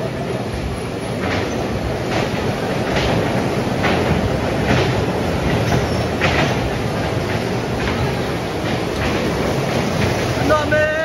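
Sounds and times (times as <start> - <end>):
bumper cars rolling rumble: 0.0 - 11.0.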